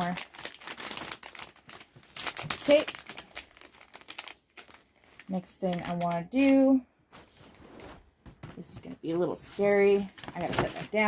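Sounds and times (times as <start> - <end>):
plastic bag crinkling: 0.0 - 6.5, 9.1 - 11.0.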